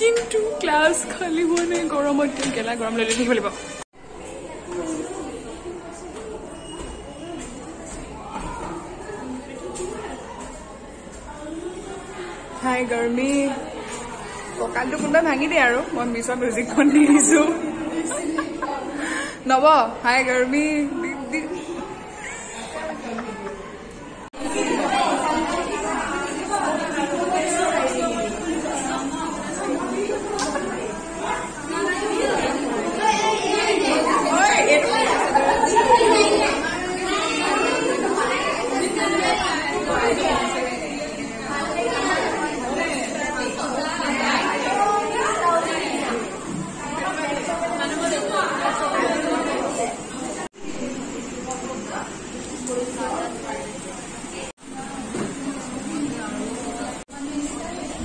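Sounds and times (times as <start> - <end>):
women chattering: 0.0 - 58.0.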